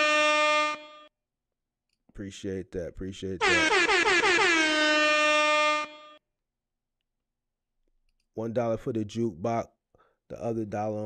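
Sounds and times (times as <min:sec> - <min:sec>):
air horn blast: 0:00.0 - 0:01.1, 0:03.4 - 0:06.2.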